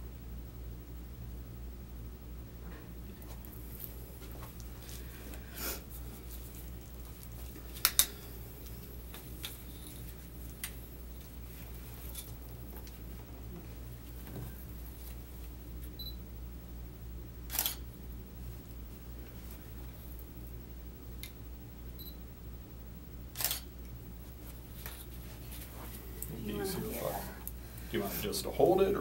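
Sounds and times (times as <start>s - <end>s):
low room hum: 0.0s - 29.0s
camera shutter clicking: 17.5s - 17.8s, 23.4s - 23.7s.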